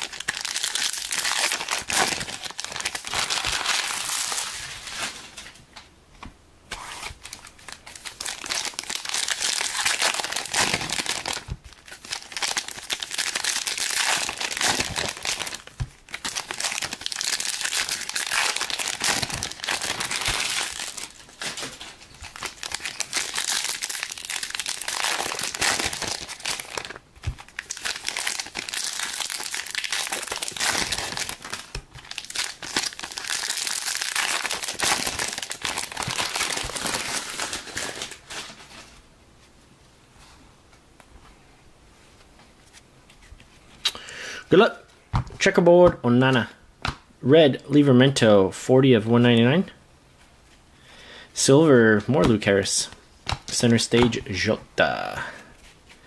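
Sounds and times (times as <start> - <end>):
foil wrappers crinkling and tearing: 0.0 - 5.6, 6.8 - 39.0.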